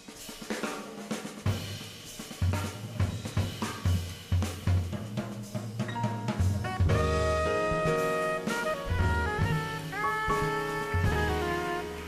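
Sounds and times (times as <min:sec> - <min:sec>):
jazz drum kit played with sticks: 0:00.0 - 0:12.0.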